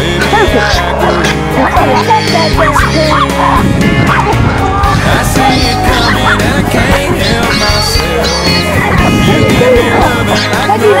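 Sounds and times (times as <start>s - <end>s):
pop music with steady beat: 0.0s - 11.0s
small dog yipping: 1.6s - 4.4s.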